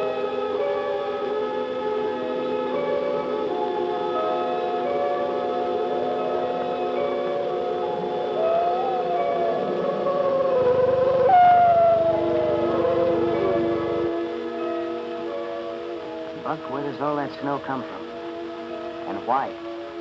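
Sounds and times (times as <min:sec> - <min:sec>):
orchestral music: 0:00.0 - 0:19.5
wolf howling: 0:07.2 - 0:14.3.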